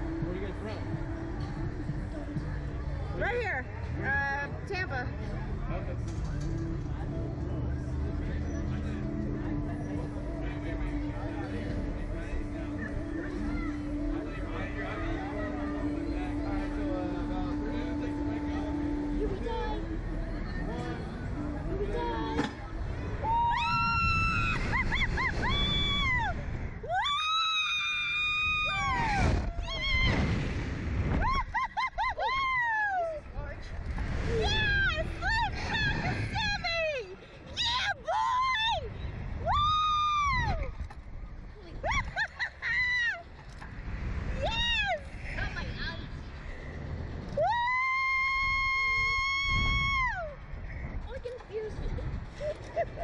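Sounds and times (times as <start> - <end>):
wind on microphone: 20.0 - 53.0
whoops: 23.2 - 30.3, 31.2 - 33.2, 39.4 - 40.8, 47.4 - 50.4
people screaming: 23.2 - 30.5, 37.6 - 40.7, 47.3 - 50.4.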